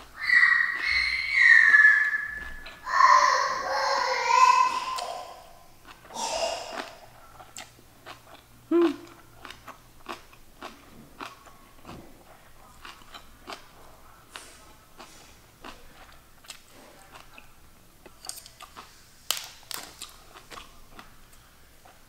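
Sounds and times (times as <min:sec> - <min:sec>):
wet crunchy chewing: 0:05.8 - 0:17.5.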